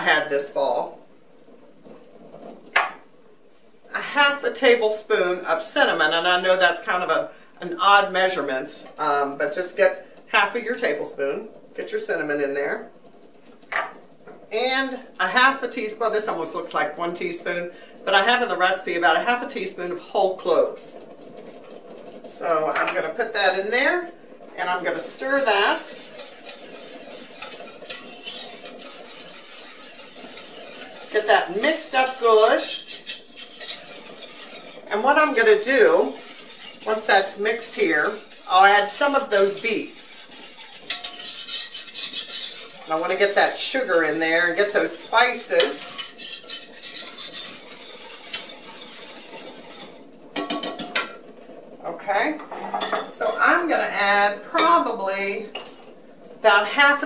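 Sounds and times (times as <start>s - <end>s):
steady low hiss: 0.0s - 57.0s
spoon scraping a saucepan: 24.6s - 51.2s.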